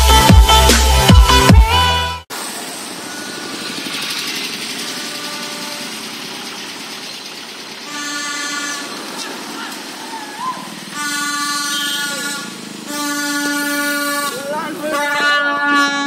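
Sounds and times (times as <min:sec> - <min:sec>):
passing vehicles: 0:00.0 - 0:15.9
motorcycle engine pulling away: 0:02.4 - 0:14.4.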